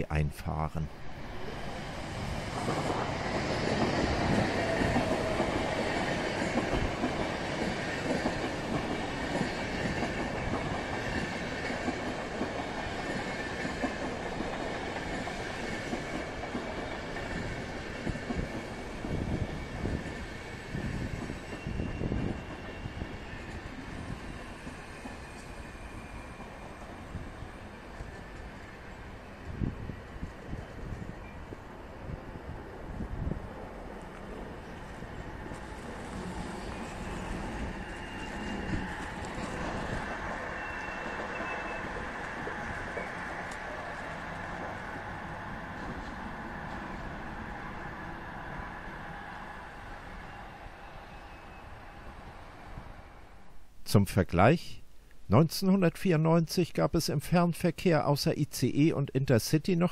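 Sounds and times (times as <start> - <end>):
train rumbling roar: 0.9 - 28.9, 32.9 - 53.4
high wheel squeal: 21.3 - 26.8, 36.2 - 43.4.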